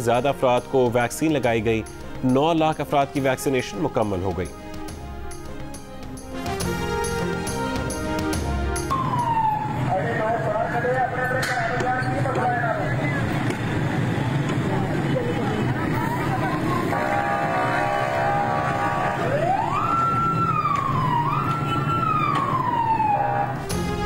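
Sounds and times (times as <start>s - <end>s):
busy street noise: 6.8s - 24.0s
siren rising and falling: 8.8s - 10.4s, 18.0s - 23.8s
people shouting: 16.8s - 19.6s
steady horn-like tone: 16.9s - 19.2s.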